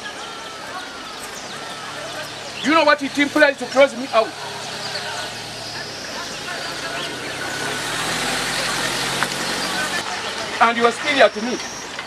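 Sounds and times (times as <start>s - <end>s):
outdoor background noise: 0.0s - 12.0s
truck engine idling: 0.0s - 12.0s.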